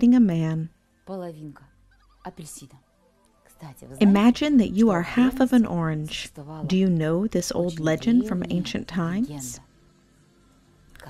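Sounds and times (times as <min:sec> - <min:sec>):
woman's wordless vocal sound: 0:04.0 - 0:04.5.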